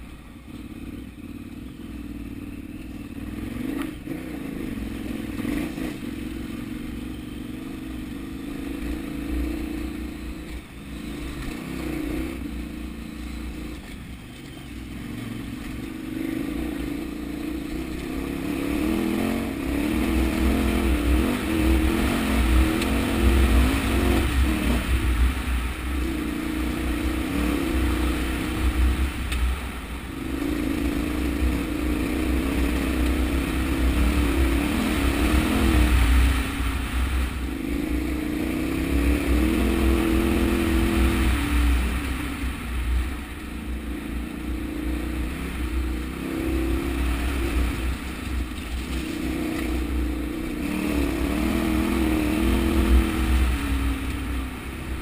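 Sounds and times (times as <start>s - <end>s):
motorcycle engine revving uphill: 0.0s - 55.0s.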